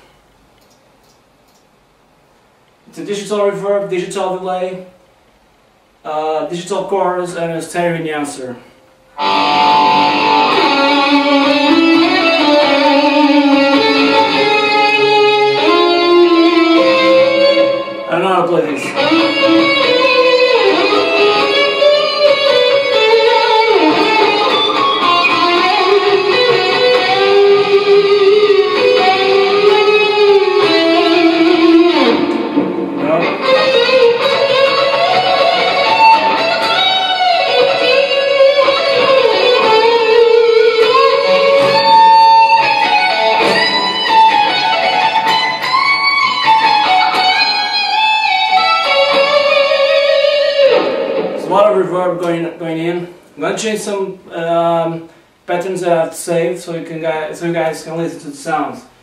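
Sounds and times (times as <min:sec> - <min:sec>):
electric guitar lead line: 0:08.6 - 0:52.6.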